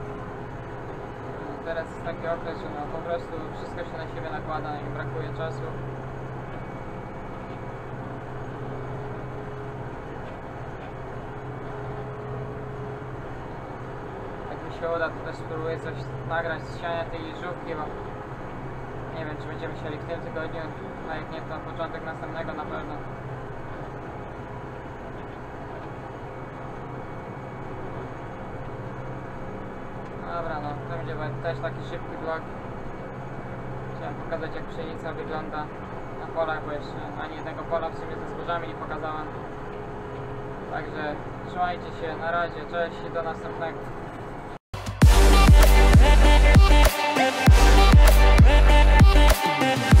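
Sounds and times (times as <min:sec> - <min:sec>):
tractor diesel engine drone: 0:00.0 - 0:50.0.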